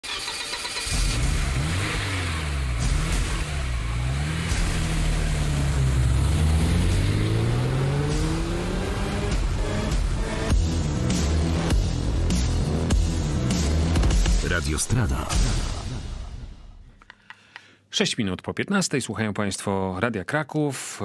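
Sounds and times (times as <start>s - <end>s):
car engine revving: 0.0s - 14.4s.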